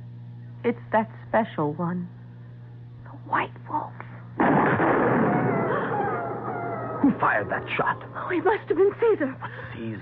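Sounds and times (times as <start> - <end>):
gunshot with echoing rumble: 4.4 - 6.8
falling whine-like tone: 4.5 - 9.4.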